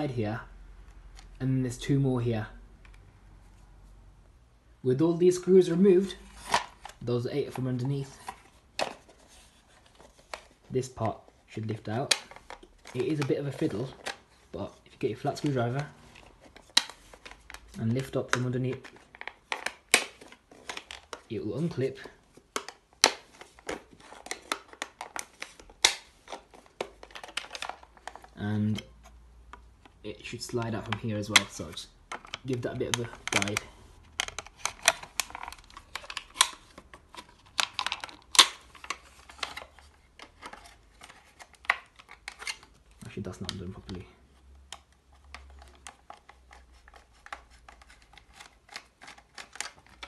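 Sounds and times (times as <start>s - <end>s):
hard plastic parts clicking and scraping: 6.0s - 50.0s.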